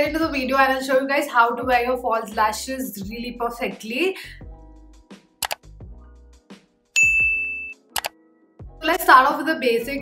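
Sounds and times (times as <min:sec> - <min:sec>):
mouse clicks: 0:05.4 - 0:05.6, 0:07.9 - 0:08.2
bright bell ding: 0:07.0 - 0:07.8.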